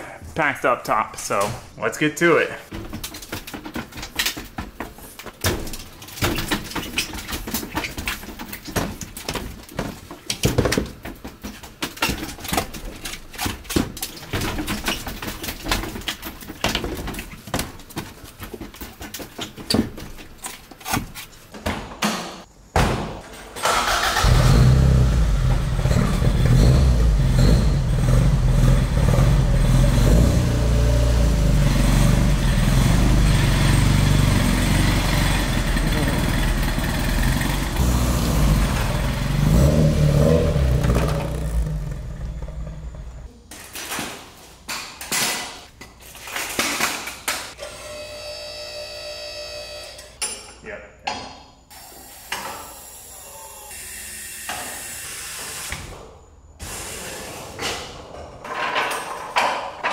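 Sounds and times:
car engine running: 24.3s - 43.3s.

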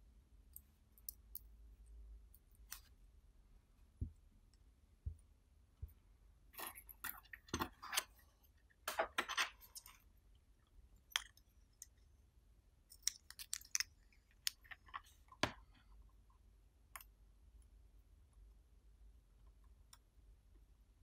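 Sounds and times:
electronic parts clicking and rustling: 6.5s - 10.1s.

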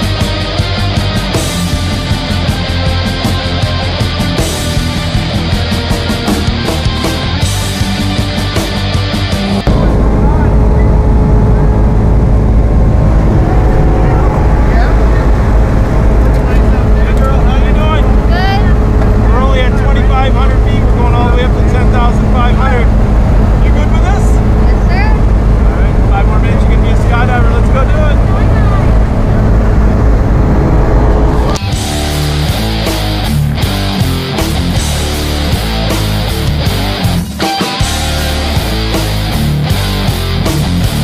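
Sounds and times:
propeller aircraft engine droning: 0.0s - 41.0s.

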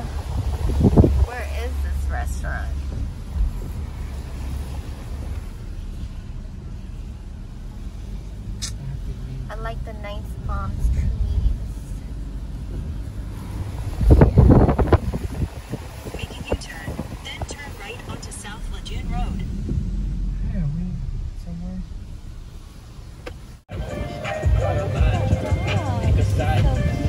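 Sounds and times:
car cabin road rumble: 0.0s - 27.0s.

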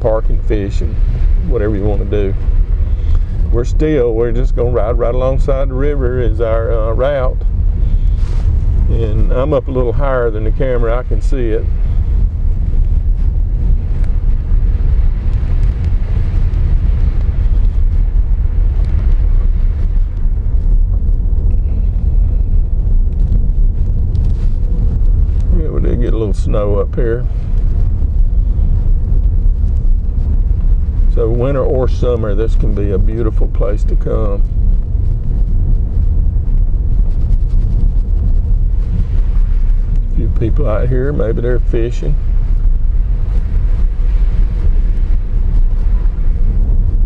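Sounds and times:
tyre and engine rumble: 0.0s - 47.0s.

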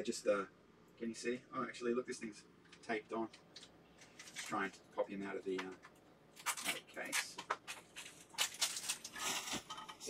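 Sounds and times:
packaging crinkling: 6.4s - 10.0s.

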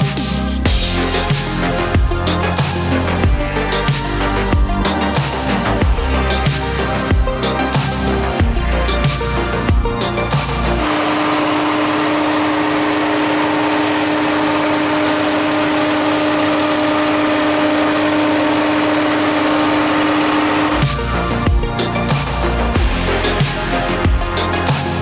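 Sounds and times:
background music: 0.0s - 25.0s
car engine idling with whine: 0.7s - 24.8s.

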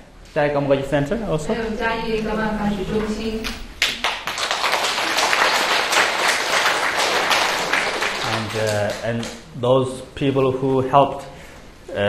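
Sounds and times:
audience applauding: 3.8s - 9.4s.

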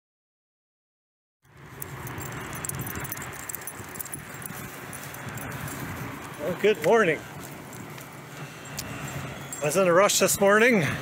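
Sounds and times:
outdoor background noise: 1.4s - 11.0s
dog collar jingling: 1.6s - 10.6s
footsteps on pavement: 1.6s - 11.0s.

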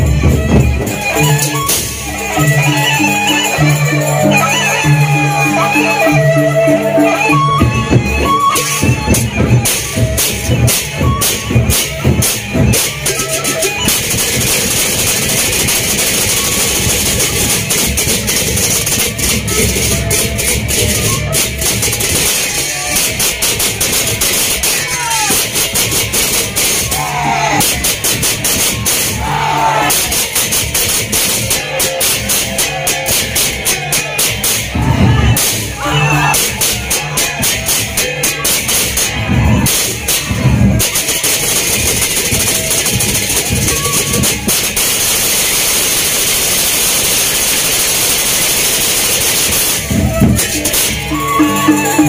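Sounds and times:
big drums and gongs: 0.0s - 52.0s
hand cymbals clashing: 29.9s - 52.0s.

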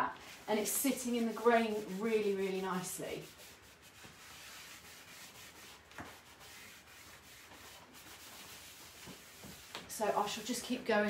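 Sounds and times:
rag rubbing on wood: 0.3s - 11.0s.

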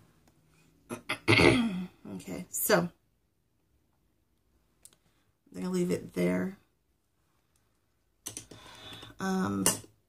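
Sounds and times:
woman clearing her throat: 0.9s - 2.0s.

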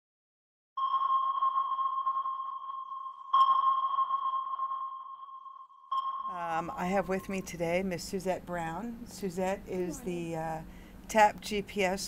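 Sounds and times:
ringing ping: 0.8s - 7.5s.

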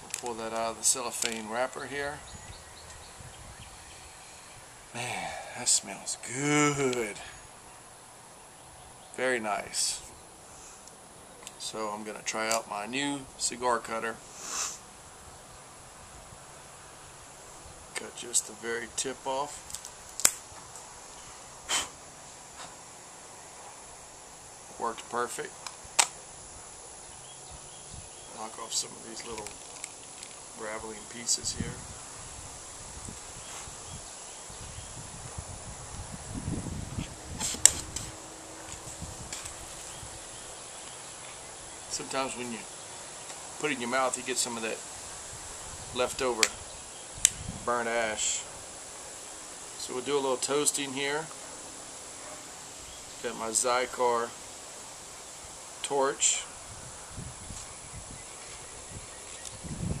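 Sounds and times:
insect drone: 0.0s - 60.0s
jet-torch lighter hissing: 14.2s - 14.9s, 37.0s - 40.0s
sharp click: 19.8s - 20.4s, 25.6s - 26.2s.

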